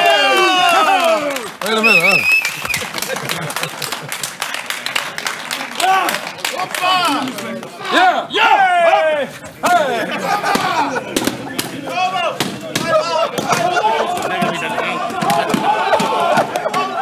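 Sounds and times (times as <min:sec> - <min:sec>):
men shouting and cheering: 0:00.0 - 0:03.9, 0:05.7 - 0:17.0.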